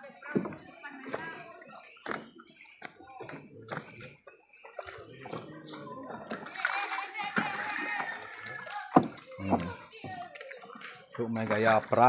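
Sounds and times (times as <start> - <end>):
people and children talking: 0.0 - 12.0
footsteps on wooden stairs: 0.2 - 6.4.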